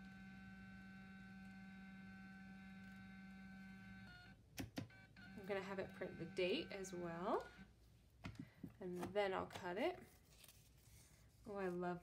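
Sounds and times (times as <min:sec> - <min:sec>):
label printer motor hum: 0:00.0 - 0:04.3, 0:04.9 - 0:07.6.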